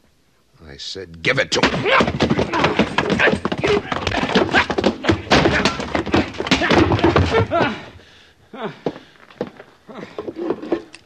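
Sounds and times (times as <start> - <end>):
men grunting and straining: 1.5 - 10.8
thuds of bodies and furniture: 1.6 - 8.0.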